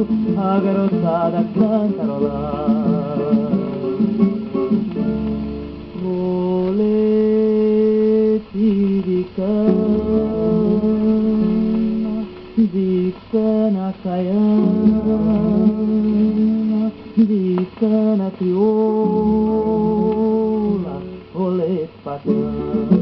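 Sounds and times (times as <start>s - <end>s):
plucked acoustic guitar: 0.0s - 23.0s
wordless vocal melody: 0.0s - 23.0s.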